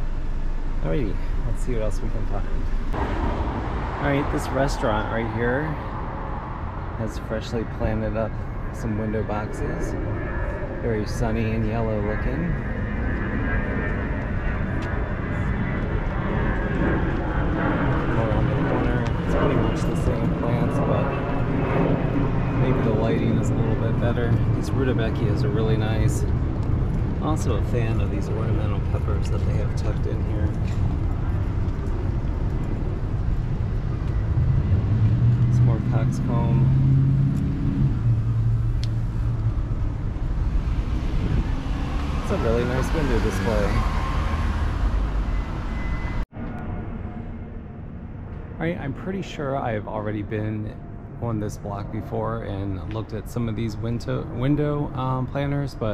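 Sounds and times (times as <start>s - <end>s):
low rumble of street traffic: 0.0s - 55.9s
vehicle engine hum: 0.0s - 55.9s.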